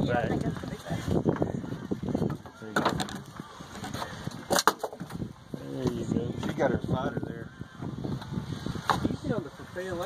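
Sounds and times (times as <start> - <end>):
people talking: 5.6 - 7.5, 9.0 - 10.0.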